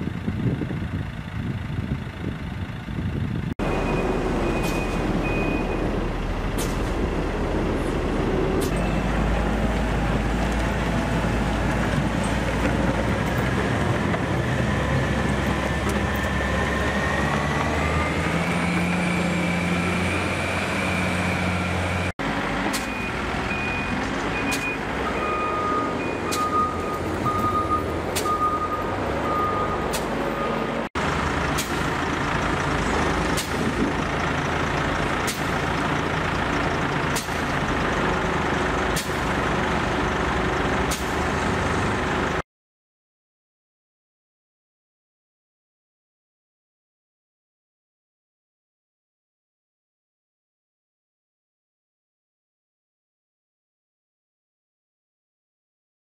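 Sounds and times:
diesel engine revving: 0.0 - 42.4
loader engine running: 0.0 - 42.4
reversing alarm beeping: 3.6 - 5.9, 22.8 - 30.7.

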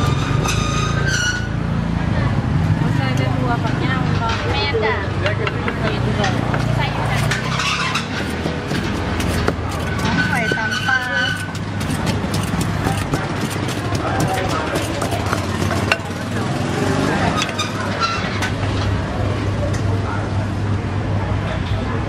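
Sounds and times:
street traffic drone: 0.0 - 22.0
voices: 1.9 - 22.0
pestle pounding in mortar: 5.4 - 16.8.

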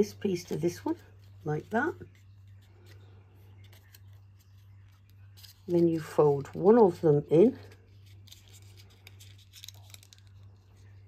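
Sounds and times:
card rustling and crinkling: 0.0 - 11.0
low steady hum: 0.0 - 11.0.

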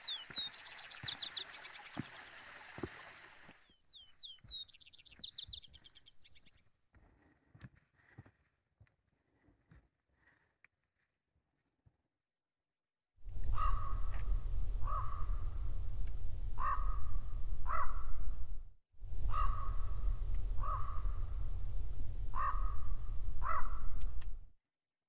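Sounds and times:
bird calling harshly: 0.0 - 2.6, 13.5 - 14.1, 16.6 - 18.1, 19.3 - 20.0, 22.3 - 23.9
wind rumble on microphone: 13.2 - 24.5.

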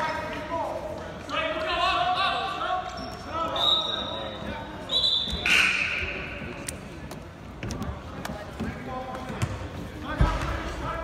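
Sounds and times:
voices echoing in gym: 0.0 - 11.0.

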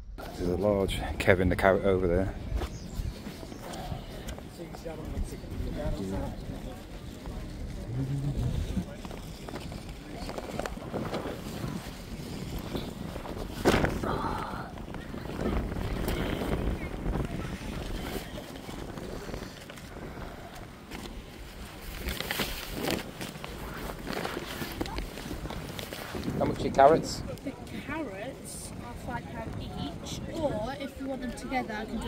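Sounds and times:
wind rumbling on microphone: 0.0 - 32.0
indistinct voices: 0.2 - 11.9, 13.7 - 21.0.

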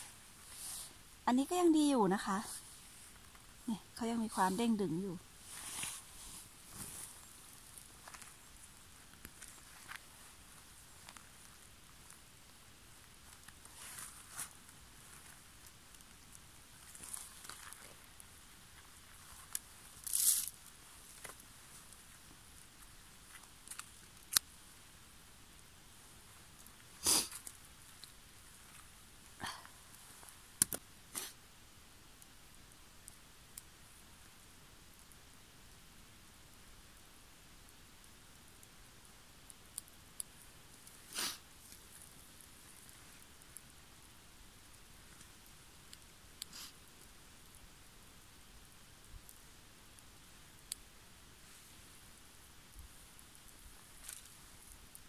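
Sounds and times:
faint background hiss: 0.0 - 55.0.

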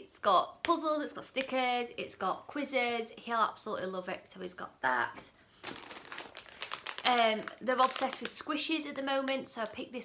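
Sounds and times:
plastic packet crinkling: 5.6 - 9.8.

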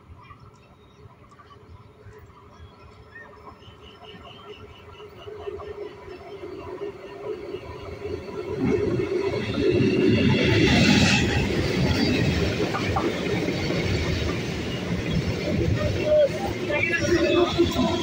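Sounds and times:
train passing: 0.0 - 18.0.

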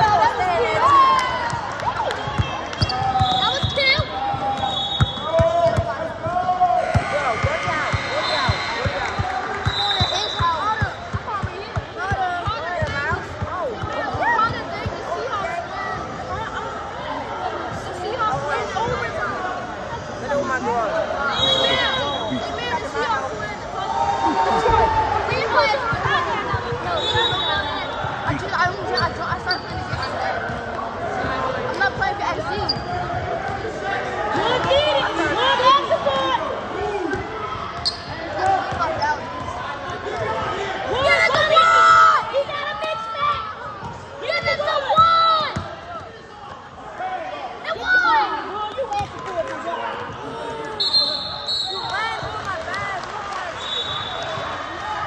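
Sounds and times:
voices in a hall: 0.0 - 55.0
sneakers squeaking: 2.1 - 15.5, 25.5 - 33.6, 37.1 - 40.2.

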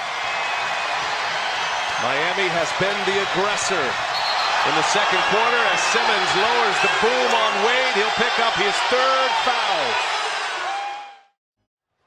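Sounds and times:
arena crowd noise: 0.0 - 11.3.

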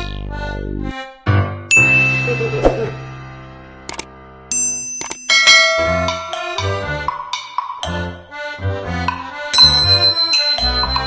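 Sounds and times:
bright bell-like ding: 1.7 - 3.3, 4.5 - 6.8, 9.6 - 11.0
metallic clang: 3.9 - 6.8.

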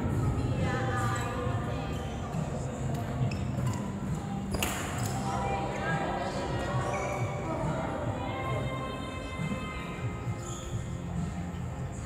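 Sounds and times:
background music: 0.0 - 12.0
shoe squeaks: 3.1 - 4.6, 6.6 - 7.6, 10.2 - 11.3.

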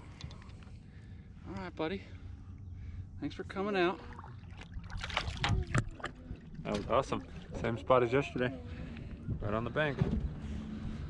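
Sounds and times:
low steady rumble: 0.0 - 11.0
fish splashing in water: 4.0 - 7.7.

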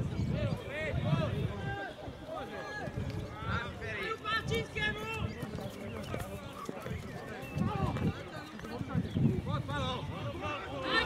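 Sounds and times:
people shouting: 10.4 - 11.0.

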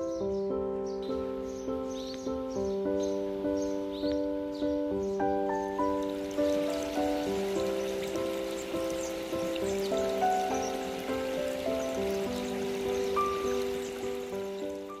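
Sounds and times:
calm melody of struck notes: 0.0 - 15.0.

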